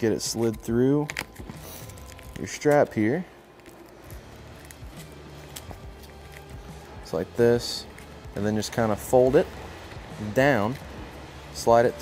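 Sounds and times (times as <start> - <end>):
quiet background music: 0.0 - 12.0
velcro strap clicks and rustles: 0.2 - 6.9.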